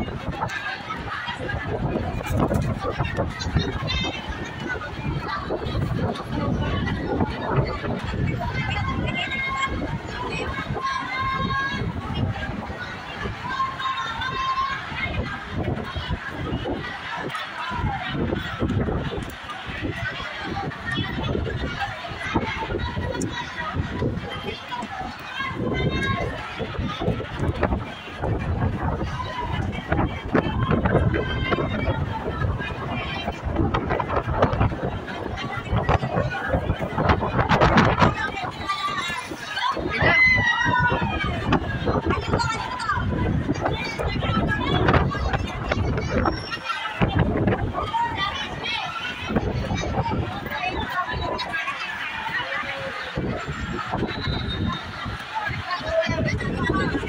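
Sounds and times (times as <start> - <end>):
crowd chatter: 0.0 - 57.0
people talking: 0.0 - 57.0
strong wind gusting on microphone: 0.0 - 57.0.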